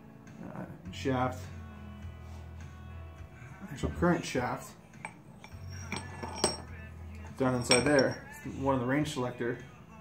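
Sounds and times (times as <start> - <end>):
steel gears clinking: 5.1 - 6.7, 7.4 - 8.3.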